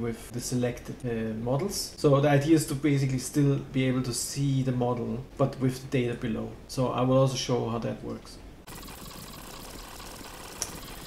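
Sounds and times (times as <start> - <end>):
microphone hiss: 0.0 - 8.7.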